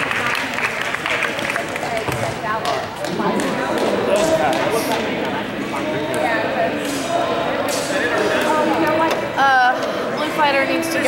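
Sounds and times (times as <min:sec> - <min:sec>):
crowd chatter echoing in hall: 0:00.0 - 0:11.0.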